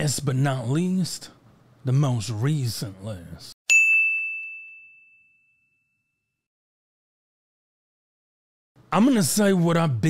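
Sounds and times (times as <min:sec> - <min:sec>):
bell-like ding: 0:03.7 - 0:06.4.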